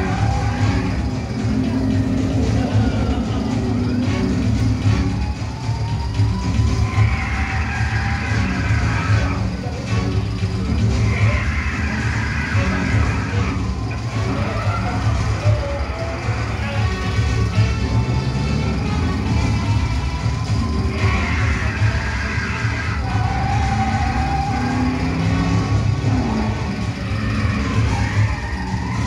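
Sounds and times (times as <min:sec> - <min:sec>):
film music over loudspeakers: 0:00.0 - 0:29.0
vehicle engine sounds: 0:00.0 - 0:29.0.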